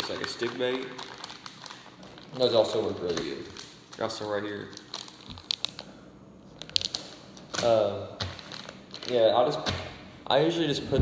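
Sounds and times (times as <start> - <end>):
plastic package crinkling: 0.0 - 5.9, 6.6 - 9.5.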